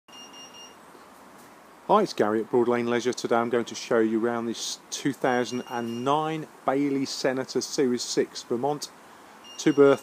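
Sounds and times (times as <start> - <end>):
high-pitched electronic beeps: 0.1 - 0.8, 5.5 - 6.2, 9.4 - 10.0
faint background hiss: 0.1 - 10.0
man's voice: 1.9 - 8.9, 9.6 - 10.0.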